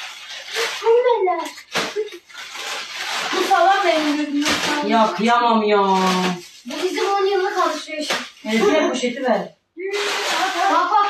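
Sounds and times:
sharp crackles: 0.0 - 8.5
plastic bags rustling: 0.0 - 11.0.

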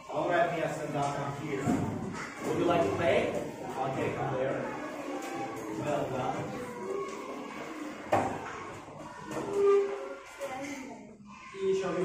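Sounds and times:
young children's voices: 0.1 - 12.0.

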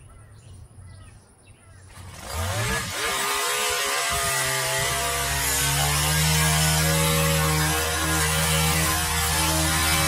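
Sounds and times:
hedge trimmer engine revving: 1.9 - 10.0.

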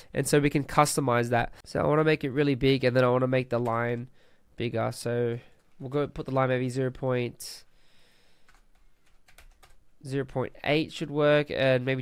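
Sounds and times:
faint keyboard keystrokes: 8.4 - 9.8.

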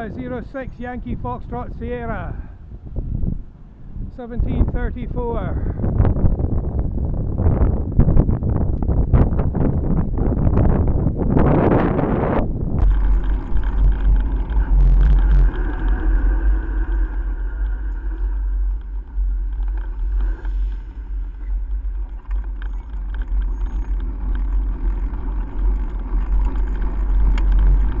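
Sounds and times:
gusty wind rush: 0.0 - 28.0
steady low rumble: 0.0 - 28.0.

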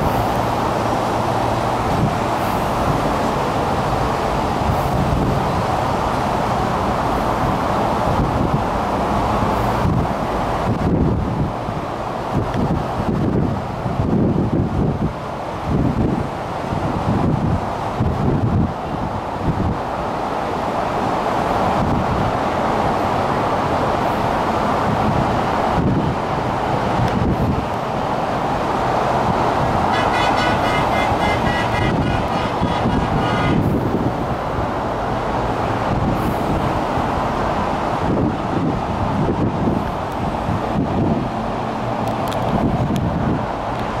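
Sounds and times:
ship rushing noise: 0.0 - 44.0
wind buffeting microphone: 0.0 - 44.0.

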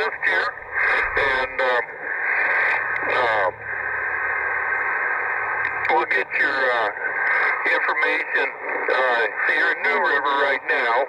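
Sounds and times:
person speaking over radio: 0.0 - 3.6, 5.6 - 11.0
radio hiss: 0.0 - 11.0.

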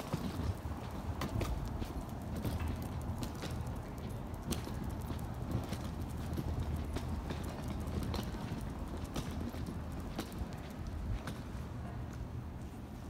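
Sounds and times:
footsteps on concrete: 0.0 - 12.3
low city rumble: 0.0 - 13.0.

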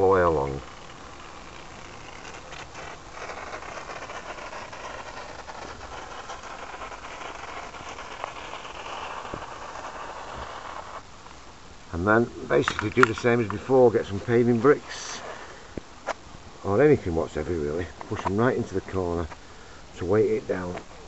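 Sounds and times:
aerosol foam can hissing: 0.0 - 11.0, 12.6 - 15.8.

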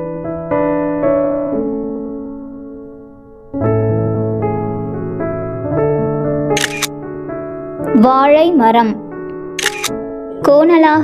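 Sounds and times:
electric piano chords: 0.0 - 10.9
camera shutter click: 6.6 - 6.9, 9.6 - 9.9.

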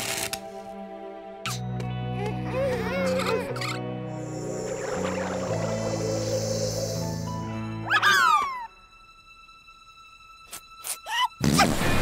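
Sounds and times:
cartoon background music: 0.5 - 12.0.

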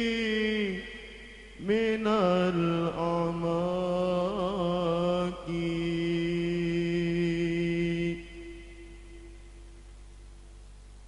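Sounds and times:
man singing melismatic chant: 0.0 - 9.8.

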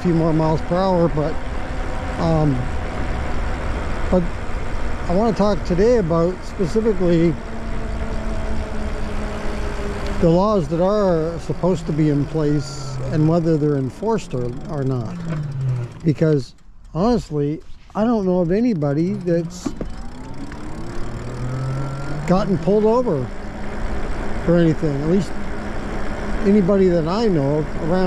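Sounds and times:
electric motor whine: 0.0 - 16.1, 19.0 - 28.0
wind and tyre rumble: 0.0 - 28.0.

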